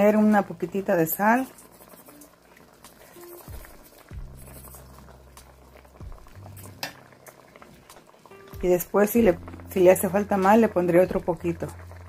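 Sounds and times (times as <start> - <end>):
metal spoon stirring in pot: 1.2 - 6.0.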